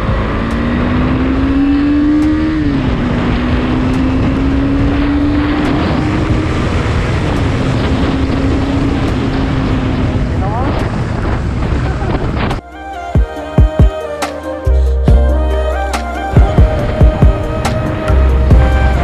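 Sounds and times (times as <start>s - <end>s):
motorcycle engine accelerating: 0.0s - 12.6s
wind rumble on microphone: 0.0s - 12.6s.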